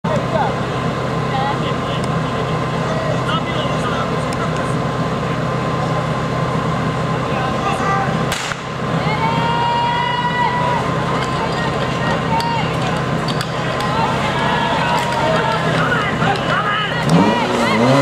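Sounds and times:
crowd voices: 0.0 - 18.0
engine running: 0.0 - 18.0
sharp crack: 8.3 - 8.8.

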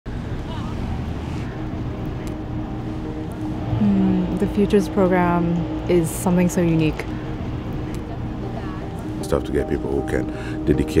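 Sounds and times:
sustained low musical notes: 1.0 - 11.0.

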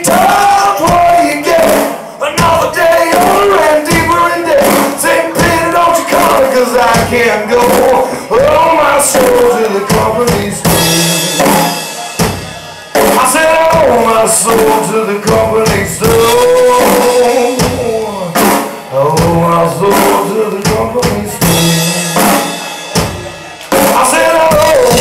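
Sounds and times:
live rock band playing: 0.0 - 25.0
man singing: 0.0 - 25.0.

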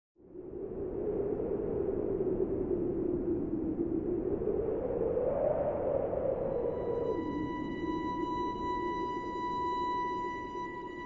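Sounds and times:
wind-like noisy drone: 0.2 - 11.0.

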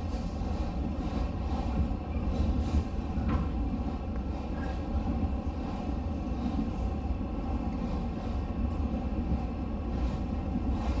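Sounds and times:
train rumbling on track: 0.0 - 11.0.

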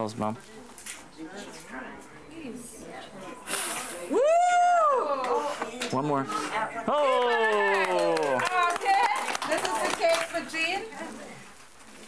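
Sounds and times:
person cheering woo: 4.1 - 5.4.

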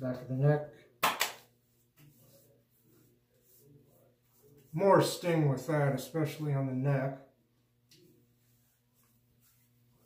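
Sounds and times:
wet hands slapping face: 1.0 - 1.5.

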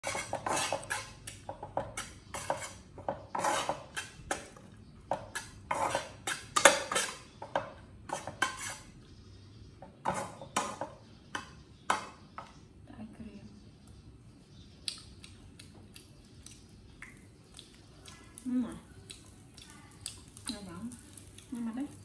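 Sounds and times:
metal spatula scraping frying pan: 0.0 - 1.2, 1.8 - 4.5, 5.2 - 7.4, 8.1 - 8.9, 10.0 - 10.8.

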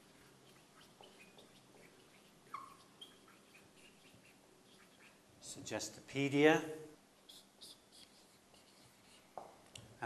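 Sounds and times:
marker squeaking on whiteboard: 0.0 - 5.6, 7.2 - 9.6.

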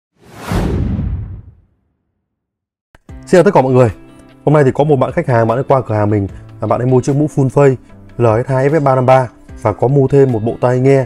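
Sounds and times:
whoosh with low rumble: 0.2 - 1.7.

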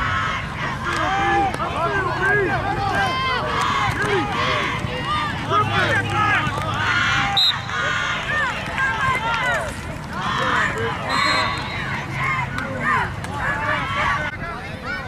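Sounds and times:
crowd yelling: 0.0 - 15.0.

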